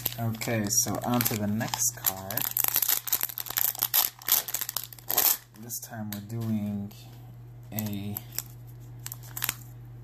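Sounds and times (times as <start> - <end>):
plastic wrapper crinkling: 0.0 - 6.5, 7.8 - 9.8.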